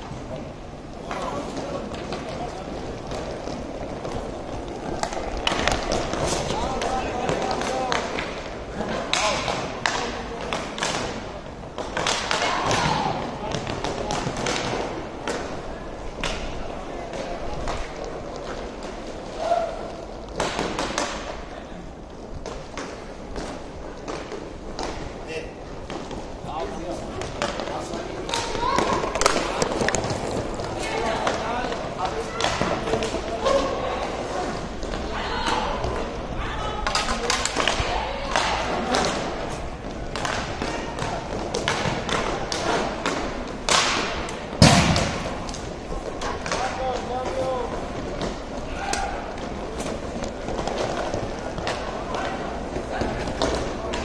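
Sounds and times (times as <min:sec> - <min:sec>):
hockey sticks clacking on puck: 0:00.0 - 0:21.5, 0:22.1 - 0:54.0
skates on rink floor: 0:00.0 - 0:54.0
puck banging against boards: 0:03.0 - 0:15.6, 0:20.3 - 0:21.4, 0:22.4 - 0:25.1, 0:27.1 - 0:33.8, 0:36.8 - 0:54.0.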